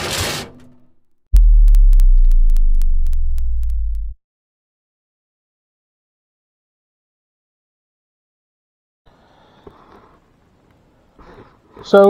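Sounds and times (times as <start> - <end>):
deep steady hum: 1.3 - 4.2
sharp ticks: 1.4 - 4.2
whoosh: 1.4 - 4.2.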